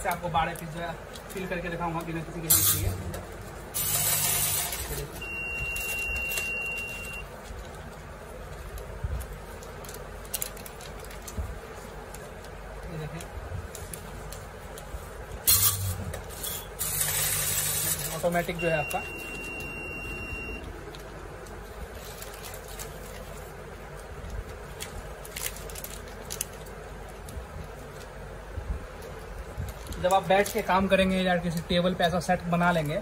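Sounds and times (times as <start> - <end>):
low machine hum: 0.0 - 30.0
machine electronic beep: 3.8 - 7.2, 18.5 - 20.6.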